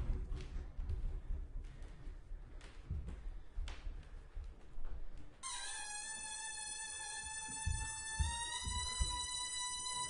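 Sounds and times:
cello bowed high note: 5.4 - 10.0
bare feet thudding on wood floor: 7.4 - 9.7.

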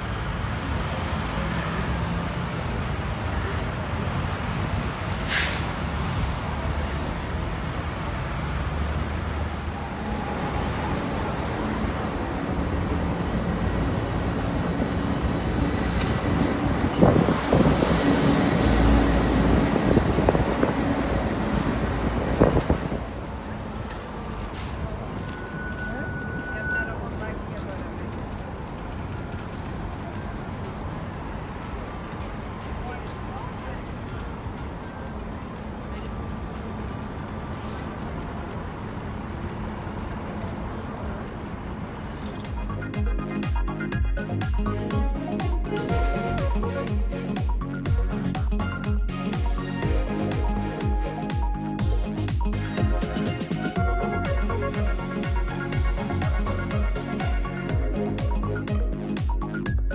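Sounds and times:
bus engine running: 0.0 - 59.9
street traffic: 0.0 - 59.9
wind and road noise: 0.0 - 59.9
music with strong beat: 42.4 - 59.9.

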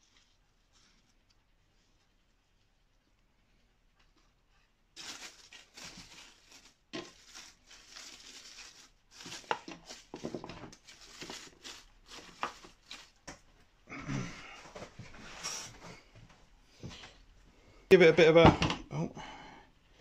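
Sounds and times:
dry leaves rustling: 5.0 - 13.3.

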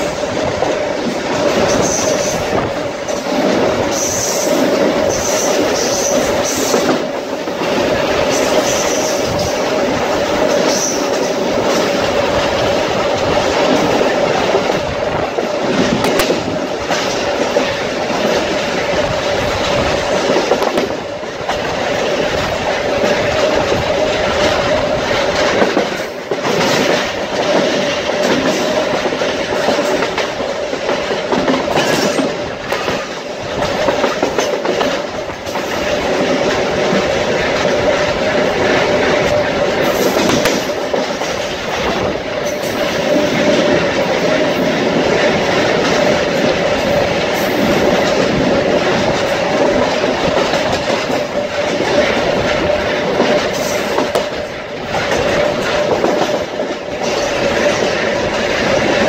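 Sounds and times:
train wheels rolling on rails: 0.0 - 59.0.

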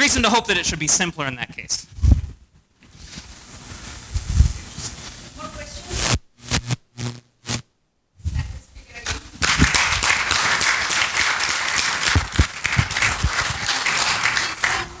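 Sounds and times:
audience applauding: 9.4 - 15.0.

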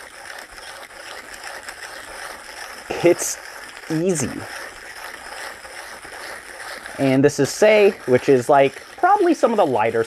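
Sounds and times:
hand grinder grinding coffee: 0.0 - 10.0.

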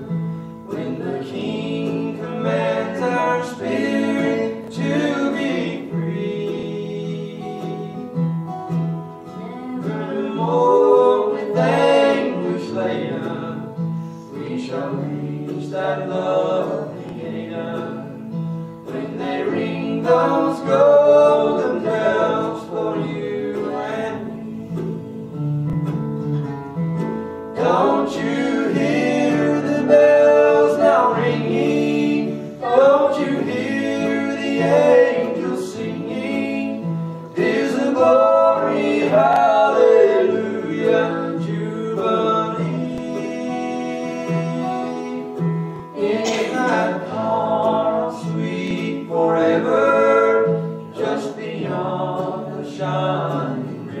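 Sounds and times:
voices singing gospel song: 0.0 - 25.7, 27.0 - 54.0
guitar accompaniment: 0.0 - 54.0.

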